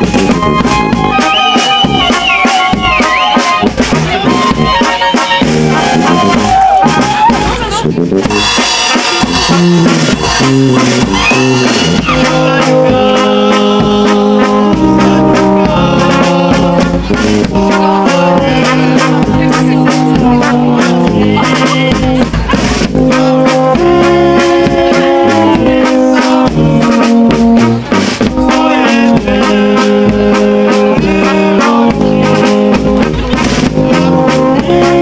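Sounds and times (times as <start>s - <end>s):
brass band playing folk dance music: 0.0s - 35.0s.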